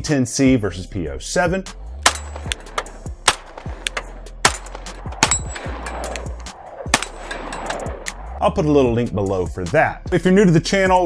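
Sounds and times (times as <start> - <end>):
steel target ringing: 2.0 - 3.7, 4.4 - 6.3
pistol shots: 2.0 - 7.9.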